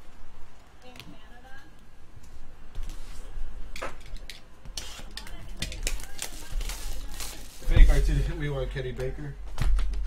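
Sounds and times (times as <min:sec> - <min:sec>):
plastic wrapping crinkling: 0:04.8 - 0:08.4.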